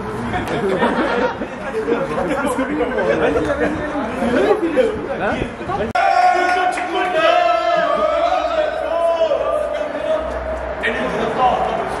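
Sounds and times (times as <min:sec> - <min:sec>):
men's group chatter: 0:00.1 - 0:12.0.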